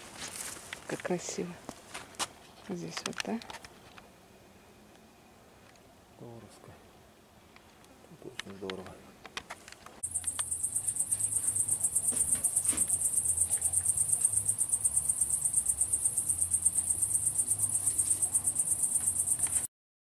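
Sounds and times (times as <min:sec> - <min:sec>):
cricket chirping: 0:10.0 - 0:19.7.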